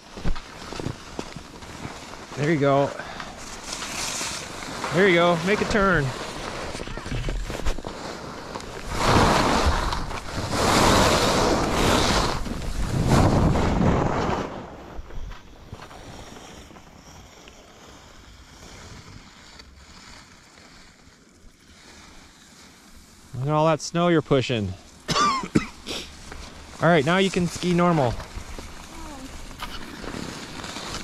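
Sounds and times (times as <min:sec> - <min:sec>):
skis swishing through powder snow: 0:00.0 - 0:31.0
wind on microphone: 0:08.8 - 0:15.8.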